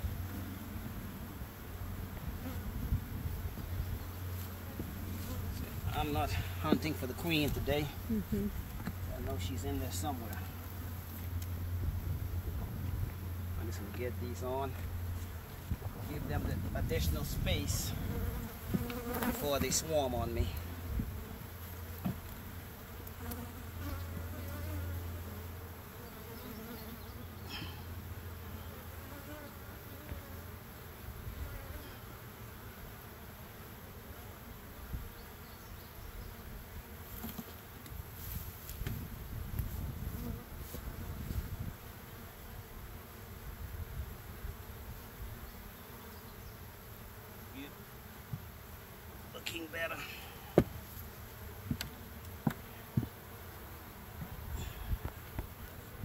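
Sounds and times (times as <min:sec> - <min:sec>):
honeybees buzzing: 0:00.0 - 0:56.0
knocks on wooden hive boxes: 0:22.0 - 0:22.2, 0:50.5 - 0:50.8, 0:51.6 - 0:53.2.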